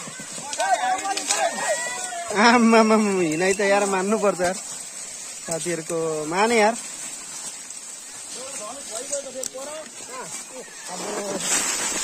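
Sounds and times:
men shouting: 0.0 - 3.2.

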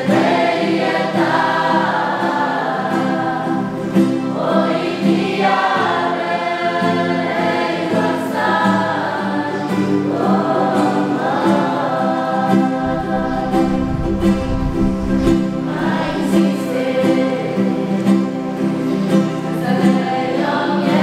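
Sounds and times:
group singing a hymn: 0.0 - 21.0
strummed acoustic guitars: 0.0 - 21.0.

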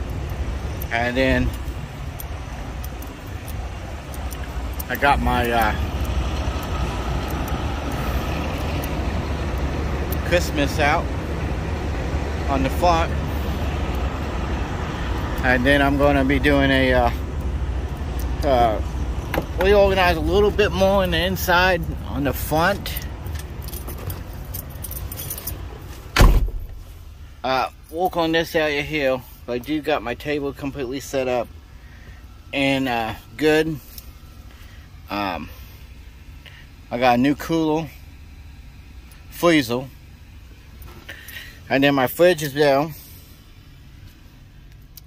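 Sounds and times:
diesel truck engines idling: 0.0 - 45.0
man speaking: 0.8 - 1.6, 4.8 - 5.9, 12.4 - 13.2, 15.4 - 17.3, 18.3 - 18.9, 19.5 - 23.2
small clinks: 22.9 - 25.6
truck cab door slamming shut: 26.1 - 26.8.

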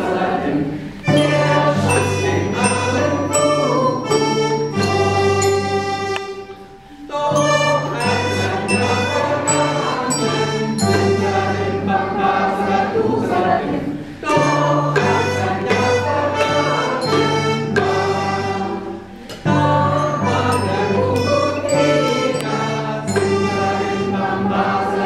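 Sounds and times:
piano accordion chords: 0.0 - 25.0
bass xylophone notes: 1.1 - 12.2, 14.2 - 24.7.

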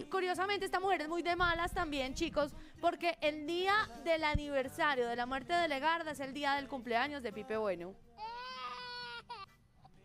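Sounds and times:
person wailing cry: 8.2 - 9.5.

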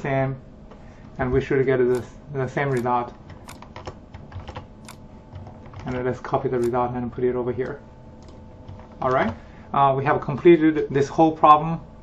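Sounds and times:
faint room hum: 0.0 - 12.0
keyboard and mouse clicking: 2.7 - 6.8, 7.6 - 9.4.

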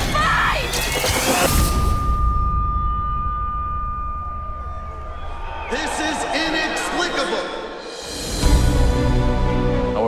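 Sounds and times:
high steady ringing tone: 1.5 - 5.6.

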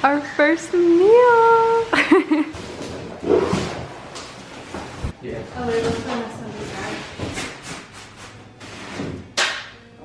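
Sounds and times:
cardboard flaps rubbing and scraping: 2.6 - 5.2, 6.5 - 9.2.

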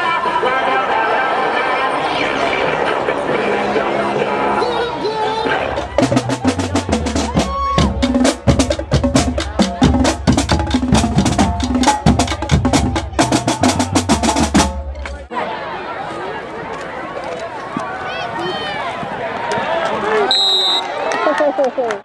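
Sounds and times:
bass drums: 5.5 - 15.3.

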